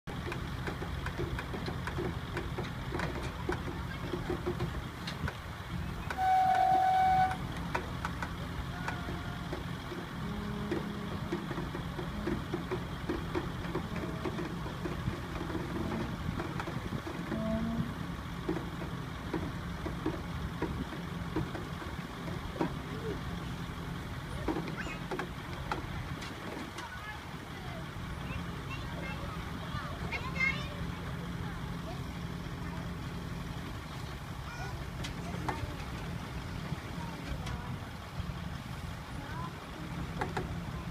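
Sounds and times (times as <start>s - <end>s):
truck diesel engine running: 0.0s - 40.9s
crane winching: 0.1s - 40.9s
loud steady horn: 6.1s - 7.5s, 10.2s - 11.4s, 17.3s - 18.0s.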